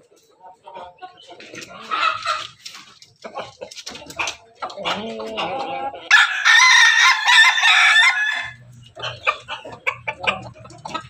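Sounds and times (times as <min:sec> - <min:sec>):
chickens clucking and calling: 0:00.0 - 0:11.0
rooster crowing: 0:06.1 - 0:08.6.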